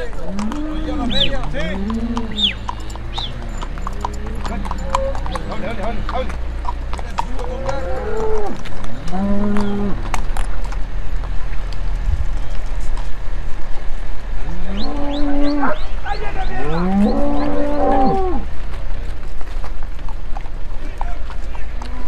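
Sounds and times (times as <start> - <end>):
cattle mooing: 0.0 - 10.4, 14.4 - 15.9, 16.6 - 18.5
low rumble: 0.0 - 19.3.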